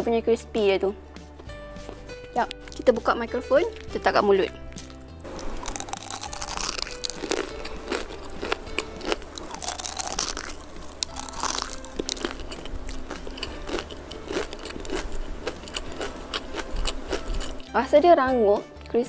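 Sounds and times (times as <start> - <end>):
crisp snack crunching: 2.4 - 3.0, 3.6 - 17.7.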